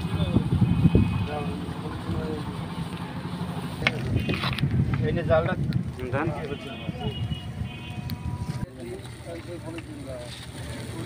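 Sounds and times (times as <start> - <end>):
fire rumbling and crackling: 0.0 - 11.0.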